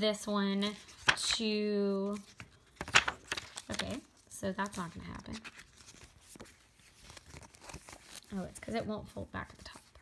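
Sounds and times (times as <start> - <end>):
paper sticker sheet crinkling: 0.7 - 10.0.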